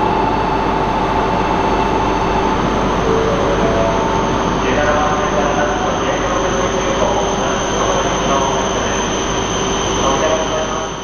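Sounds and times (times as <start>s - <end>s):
trains at station platform: 0.0s - 11.0s
indistinct voices: 3.0s - 9.2s.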